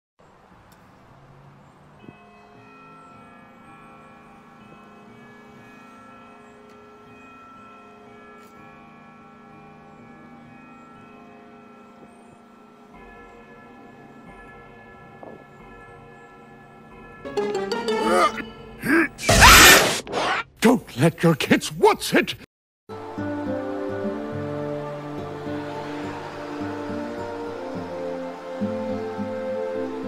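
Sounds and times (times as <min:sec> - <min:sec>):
tower bells chiming a tune: 0:01.8 - 0:19.2.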